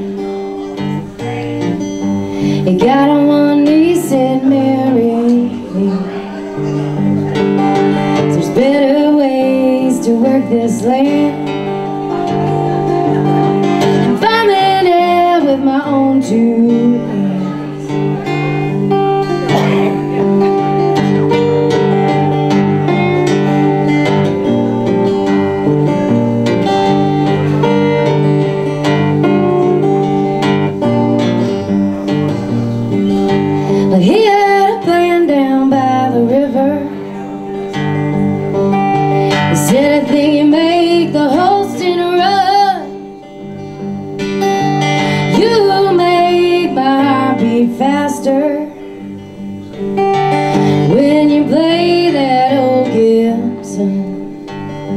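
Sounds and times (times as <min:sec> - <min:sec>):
acoustic guitar strumming: 0:00.0 - 0:54.9
woman singing: 0:00.8 - 0:06.4, 0:07.6 - 0:18.3, 0:33.3 - 0:37.4, 0:38.9 - 0:43.6, 0:44.8 - 0:49.2, 0:50.2 - 0:54.9.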